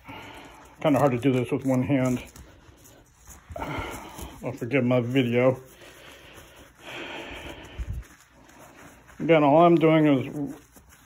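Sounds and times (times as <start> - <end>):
towel rubbing a pool ball: 0.0 - 11.0.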